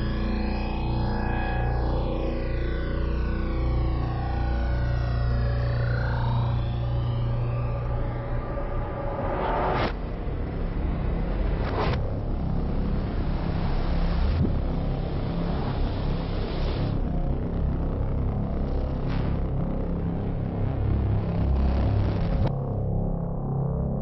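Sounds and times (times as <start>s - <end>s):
low rumbling drone: 0.0s - 24.0s
rising whooshes: 7.4s - 10.1s.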